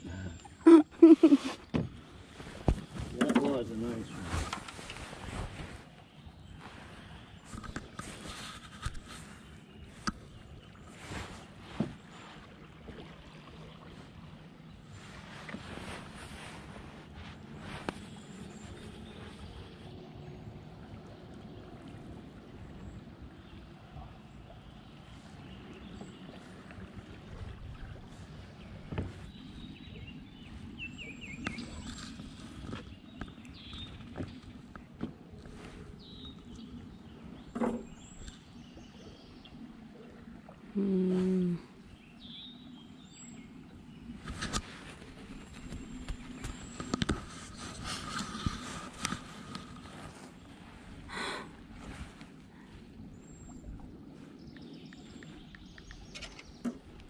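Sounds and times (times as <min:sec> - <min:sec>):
person humming: 0:00.0 - 0:01.5, 0:40.8 - 0:41.7
birds chirping: 0:00.0 - 0:12.4, 0:14.6 - 0:21.8, 0:22.6 - 0:57.0.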